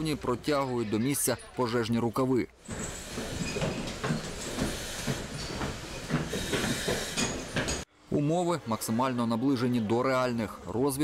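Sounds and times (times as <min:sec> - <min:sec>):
footsteps: 0:02.6 - 0:07.9
breathing apparatus hiss: 0:02.7 - 0:07.8.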